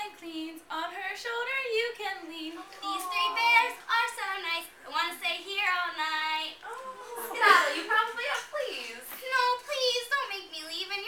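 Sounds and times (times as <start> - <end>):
woman singing: 0.0 - 5.2.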